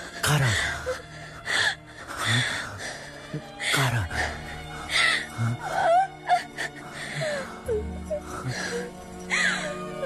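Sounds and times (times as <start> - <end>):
mournful film score: 0.0 - 10.0
woman gasping and moaning: 0.0 - 10.0.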